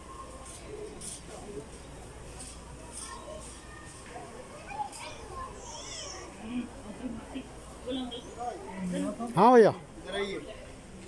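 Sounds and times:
background chatter of shoppers: 0:00.0 - 0:11.0
children's voices: 0:03.0 - 0:06.8.

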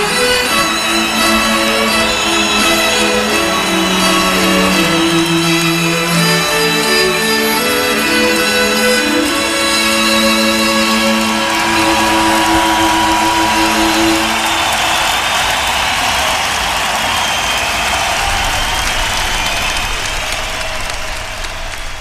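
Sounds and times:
strings and band chord: 0:00.0 - 0:15.4
audience applauding: 0:00.0 - 0:22.0.

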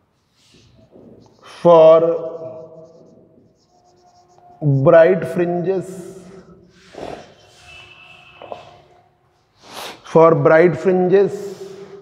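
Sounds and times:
marker pen writing on whiteboard: 0:00.0 - 0:10.0
man speaking: 0:01.4 - 0:03.3, 0:04.6 - 0:06.6, 0:10.1 - 0:11.6.

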